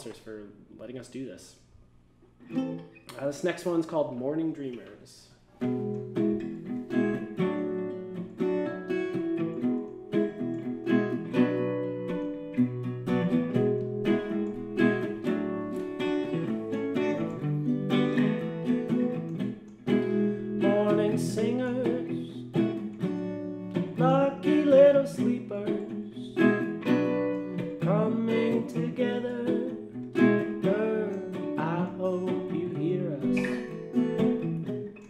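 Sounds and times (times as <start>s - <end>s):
acoustic guitar playing: 2.4s - 4.8s, 5.5s - 35.0s.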